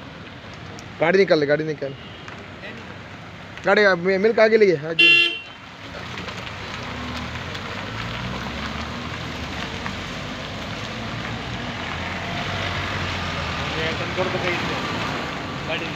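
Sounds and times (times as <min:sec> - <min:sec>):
car engine and road noise: 0:00.0 - 0:15.9
car horn toot: 0:05.0 - 0:05.6.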